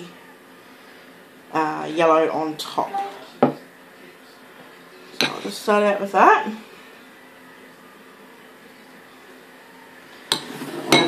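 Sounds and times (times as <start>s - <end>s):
knock on a bench: 3.4s - 3.6s
kitchen things being moved: 10.3s - 11.0s.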